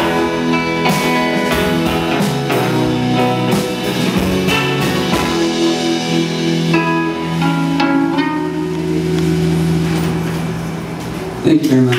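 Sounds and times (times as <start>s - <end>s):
electric guitar notes: 0.0s - 11.9s
live rock band: 0.0s - 11.9s.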